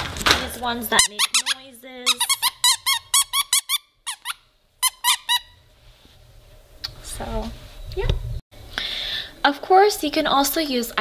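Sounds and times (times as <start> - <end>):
dog toy squeaking: 0.9 - 5.6.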